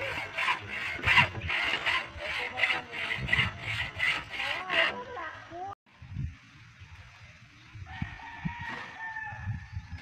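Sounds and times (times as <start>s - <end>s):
rooster crowing: 7.9s - 9.6s.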